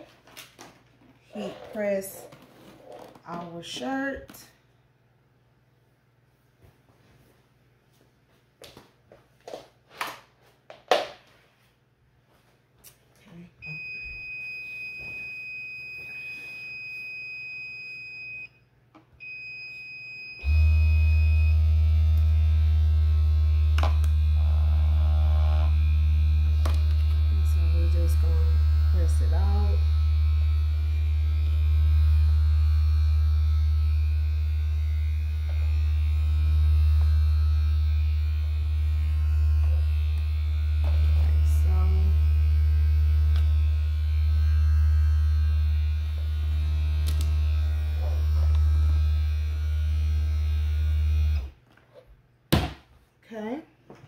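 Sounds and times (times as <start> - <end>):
low electrical hum: 0.0 - 54.0.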